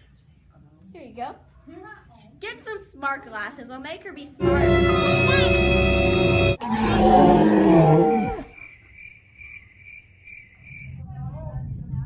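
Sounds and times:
held musical note: 4.4s - 8.4s
loud roar falling in pitch: 4.4s - 8.5s.

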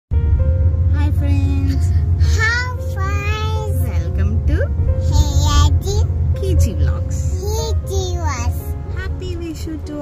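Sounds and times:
car cabin rumble: 0.1s - 10.0s.

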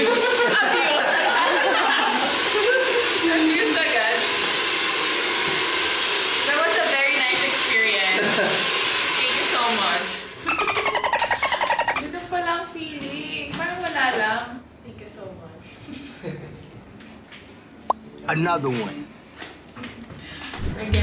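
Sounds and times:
voices and laughter: 0.0s - 3.6s
hair dryer blowing: 0.0s - 12.0s.

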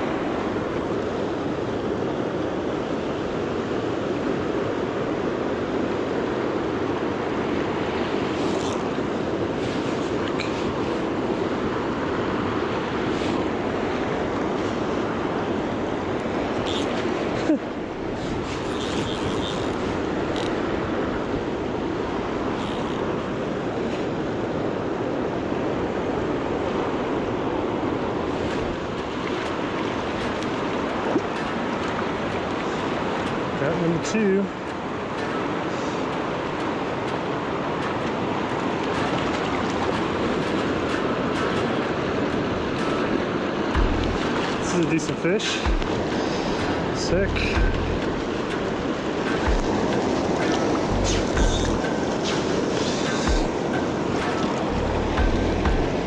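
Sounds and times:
river rushing over rocks: 0.0s - 56.0s.

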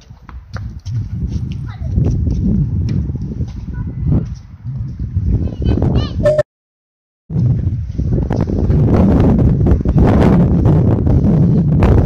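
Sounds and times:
wind rumble on microphone: 0.0s - 6.4s, 7.3s - 12.0s.

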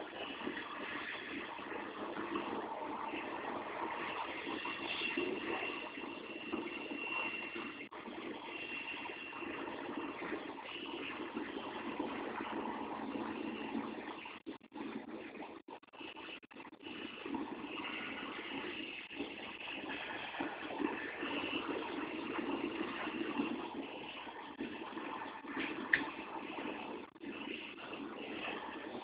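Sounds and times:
faint high whine: 0.0s - 29.0s.

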